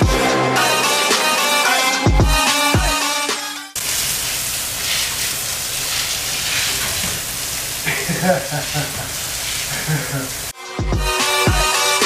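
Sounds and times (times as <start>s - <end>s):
hose water on concrete: 3.8s - 10.6s.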